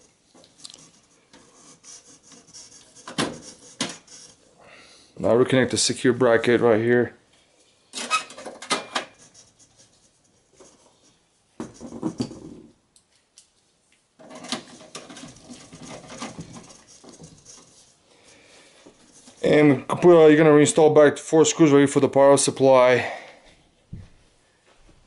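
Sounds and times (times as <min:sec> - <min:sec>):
metal parts rustling and scraping: 0:07.9 - 0:10.8, 0:14.2 - 0:18.0.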